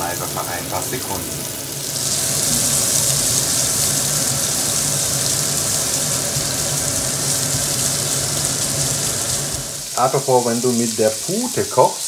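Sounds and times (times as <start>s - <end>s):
carrots sizzling in fat: 0.0s - 12.0s.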